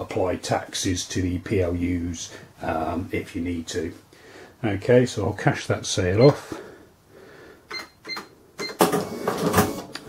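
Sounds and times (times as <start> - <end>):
cash register keys beeping: 7.7 - 9.9.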